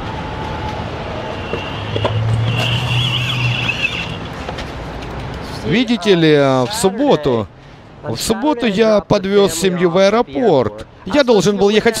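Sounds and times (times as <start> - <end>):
motor vehicle running: 0.0 - 5.6
thin high whine: 0.6 - 4.4.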